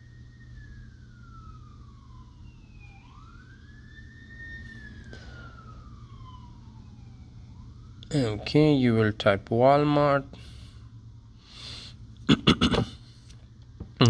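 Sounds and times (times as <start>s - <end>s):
faint wailing siren: 0.0s - 12.1s
steady low hum: 0.0s - 14.0s.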